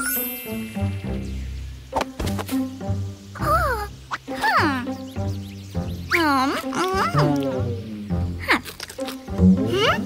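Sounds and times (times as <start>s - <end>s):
children's background music: 0.0s - 10.0s
cartoon character vocal sounds: 6.1s - 7.4s.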